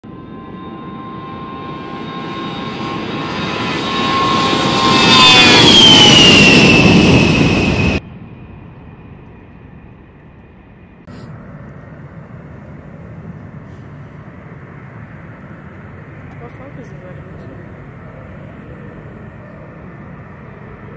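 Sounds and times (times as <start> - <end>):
distant jet engine noise: 0.1 - 20.9
jet engines whining: 0.1 - 20.9.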